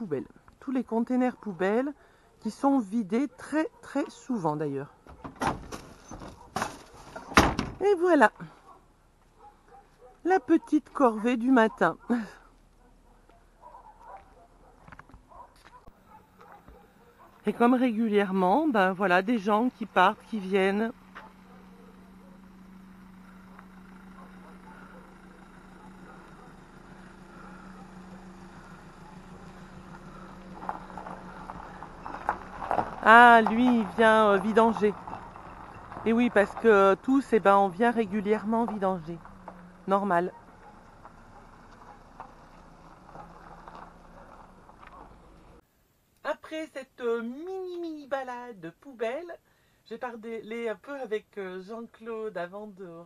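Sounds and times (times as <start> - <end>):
motorhome engine running: 15.3 - 45.6.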